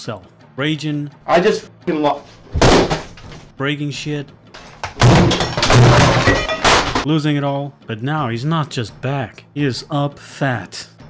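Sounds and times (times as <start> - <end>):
banging and smashing: 2.5 - 3.4, 4.6 - 7.1.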